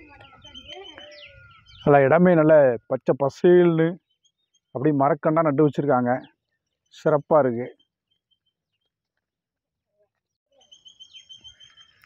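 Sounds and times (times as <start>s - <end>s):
bird chirping: 0.0s - 9.4s, 10.2s - 12.0s
faint outdoor noise: 0.0s - 12.0s.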